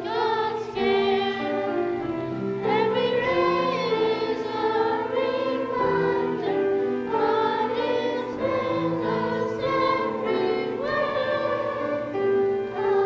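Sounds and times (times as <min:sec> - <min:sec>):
choir singing: 0:00.0 - 0:13.0
piano accompaniment: 0:00.0 - 0:13.0.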